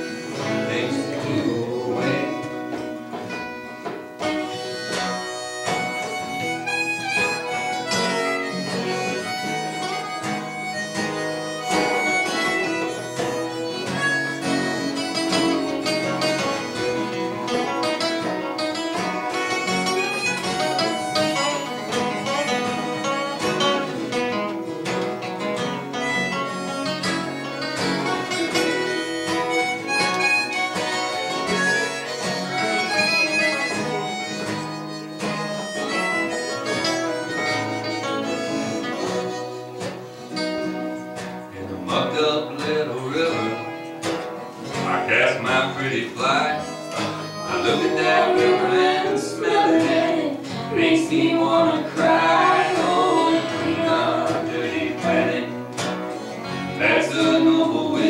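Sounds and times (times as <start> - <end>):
harmonica playing a lead: 0.0 - 2.8, 4.2 - 41.5, 45.2 - 58.0
banjo: 0.0 - 58.0
strummed acoustic guitars: 0.0 - 58.0.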